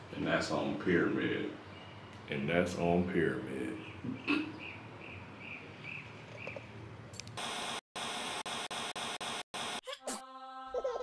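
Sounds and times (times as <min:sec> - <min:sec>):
chirp: 0:01.7 - 0:02.3, 0:03.7 - 0:06.7
static hiss: 0:07.4 - 0:09.8.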